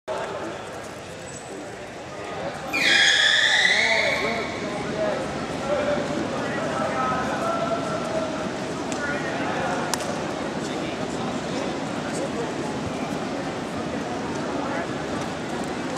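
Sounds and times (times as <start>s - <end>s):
murmur of voices: 0.1s - 15.9s
whistle blast: 2.8s - 4.5s.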